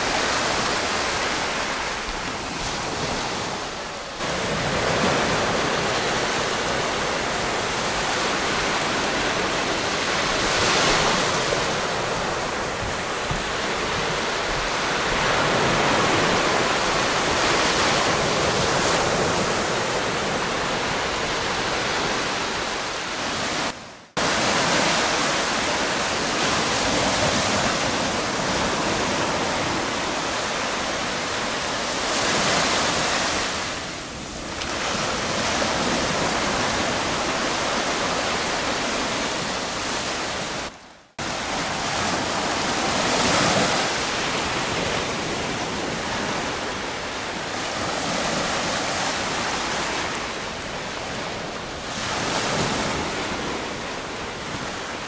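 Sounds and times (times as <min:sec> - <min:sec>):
waves washing up a beach: 0:00.0 - 0:55.0.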